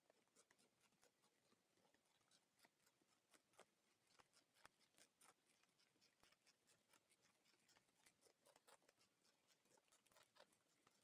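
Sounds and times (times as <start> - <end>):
caterpillar chewing a leaf: 0.0 - 11.0.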